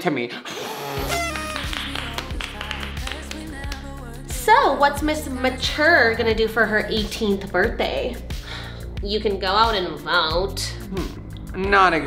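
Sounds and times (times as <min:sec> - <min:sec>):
music with deep bass and beat: 0:01.1 - 0:12.0.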